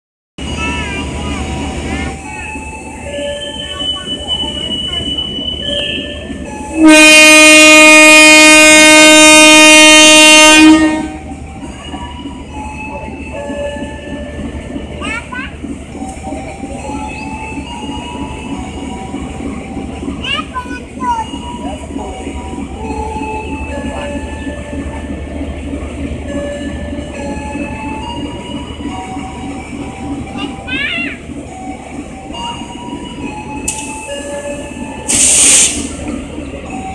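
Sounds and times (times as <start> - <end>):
diesel locomotive rumbling: 0.4 - 36.9
train horn blast: 4.4 - 11.2.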